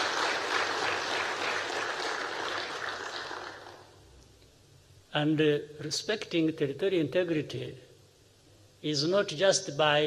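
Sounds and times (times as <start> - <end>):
audience applauding: 0.0 - 3.9.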